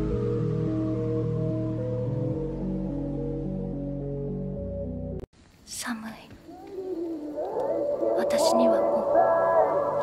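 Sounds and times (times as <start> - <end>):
background music: 0.0 - 5.3, 7.7 - 10.0
breathy whispered voice: 5.7 - 10.0.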